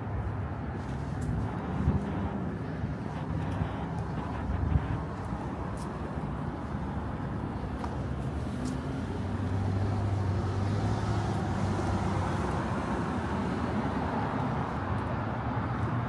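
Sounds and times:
car engines and tyres: 0:00.0 - 0:16.0
vehicle engine hum: 0:00.0 - 0:16.0.

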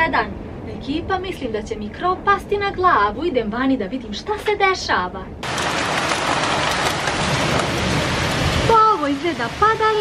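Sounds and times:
heavy rain and hail: 0:05.4 - 0:10.0.

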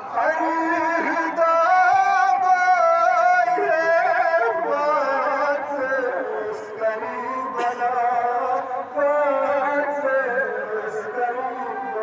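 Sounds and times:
man singing a lament: 0:00.0 - 0:12.0.

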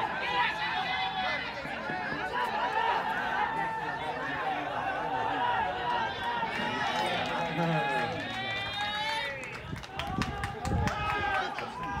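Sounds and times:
players calling and shouting: 0:00.0 - 0:12.0.

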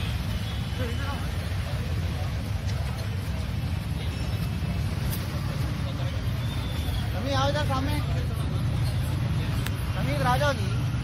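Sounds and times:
crowd chatter: 0:00.0 - 0:11.0
traffic rumble: 0:00.0 - 0:11.0.

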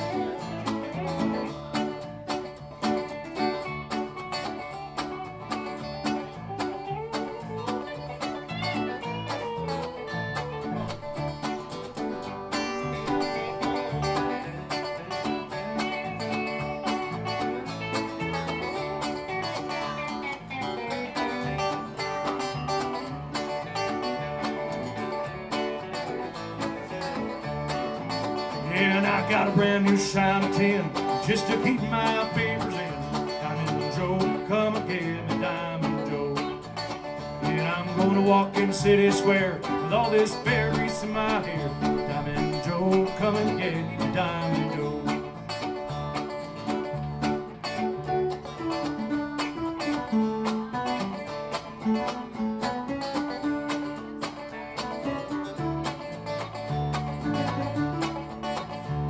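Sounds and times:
electric guitar: 0:00.0 - 0:59.0
keyboard playing: 0:00.0 - 0:59.0
strummed acoustic guitar: 0:00.0 - 0:59.0
person singing: 0:28.3 - 0:45.8.

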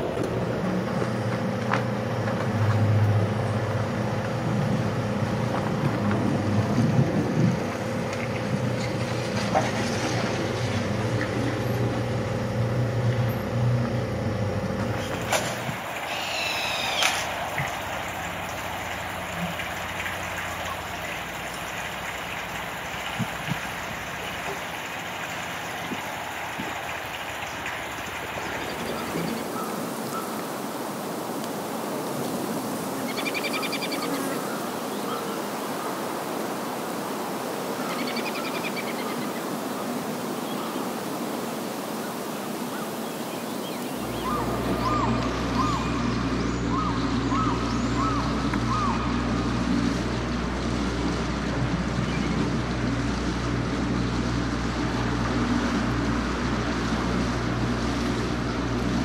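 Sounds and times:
engine hum: 0:00.0 - 0:59.0
steady hiss: 0:14.8 - 0:45.5
bird chirping: 0:42.8 - 0:48.9.

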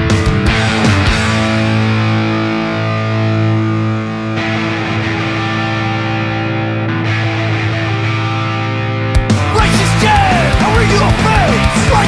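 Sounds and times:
distorted electric guitar chords: 0:00.0 - 0:12.0.

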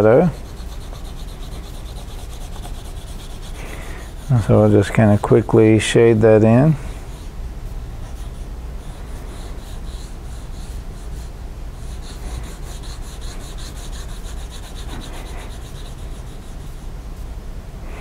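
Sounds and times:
pencil scratching on paper: 0:00.0 - 0:07.3, 0:08.0 - 0:16.8
low steady hum: 0:00.0 - 0:18.0.

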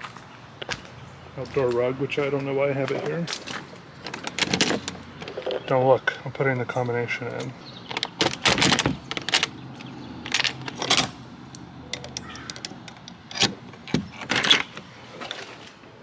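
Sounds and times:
padlock clinking and rattling: 0:04.0 - 0:05.7, 0:06.6 - 0:14.9.

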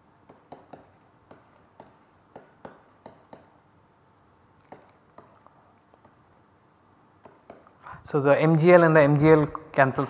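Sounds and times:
stylus tapping and scratching tablet: 0:00.2 - 0:03.6, 0:04.6 - 0:06.4, 0:07.2 - 0:07.8.

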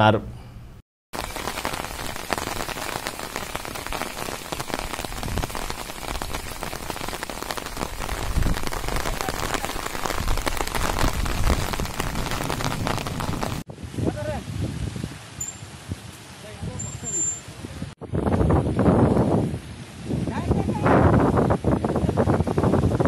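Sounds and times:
rain pouring on wet ground: 0:01.2 - 0:17.7.

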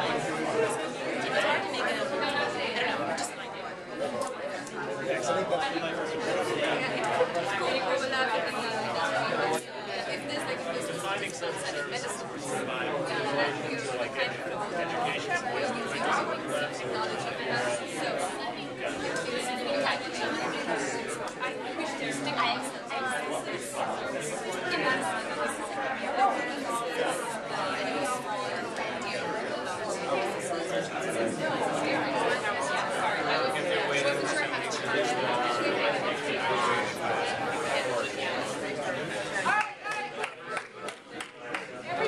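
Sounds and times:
hubbub of overlapping voices: 0:00.0 - 0:42.0.

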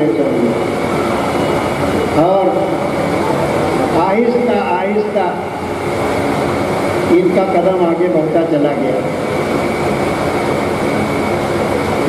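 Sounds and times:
steady rushing noise: 0:00.0 - 0:12.0
thin high whine: 0:00.0 - 0:12.0.

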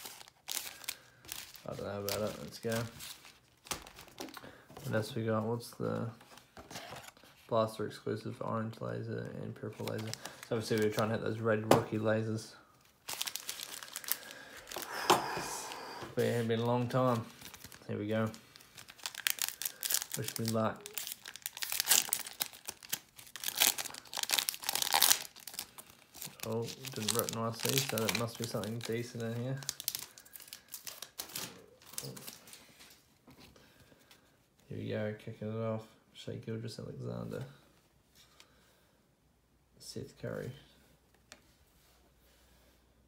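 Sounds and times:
foil packs crinkling: 0:00.0 - 0:04.6, 0:09.7 - 0:11.2, 0:13.0 - 0:32.6.

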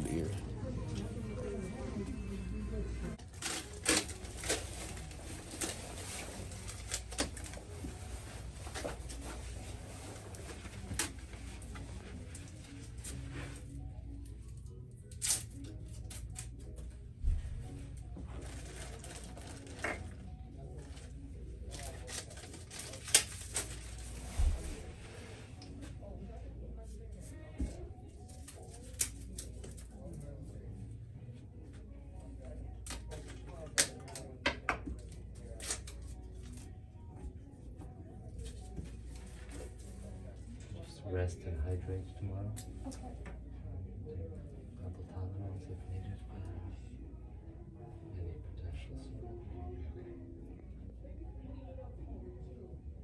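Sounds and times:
low murmur of voices: 0:00.0 - 0:53.0.

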